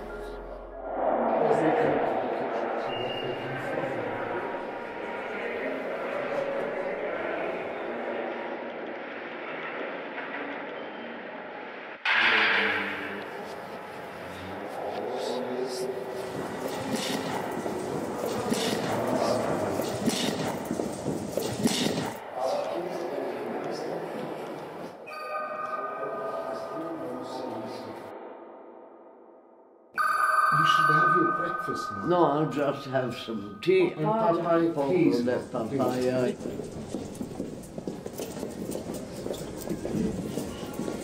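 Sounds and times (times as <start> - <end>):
indistinct voices: 0.0 - 8.8, 12.1 - 28.7, 30.0 - 41.0
room noise: 12.0 - 28.2.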